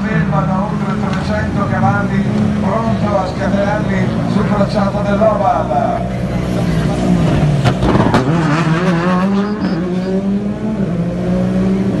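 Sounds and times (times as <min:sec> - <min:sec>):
rally car engine accelerating: 0:06.0 - 0:12.0.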